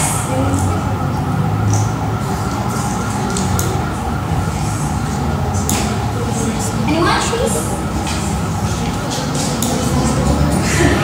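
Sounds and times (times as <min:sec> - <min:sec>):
steady droning hum: 0:00.0 - 0:11.0.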